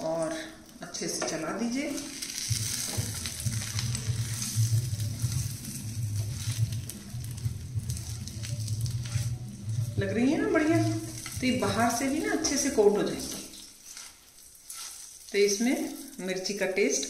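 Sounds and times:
low steady hum: 0.0 - 13.7
chillies sizzling in oil: 0.0 - 17.0
metal spatula scraping pan: 7.3 - 12.6, 13.2 - 15.2.

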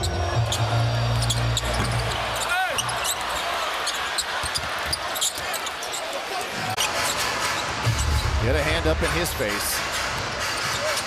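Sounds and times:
sneakers squeaking: 0.0 - 8.3
crowd noise: 0.0 - 11.0.

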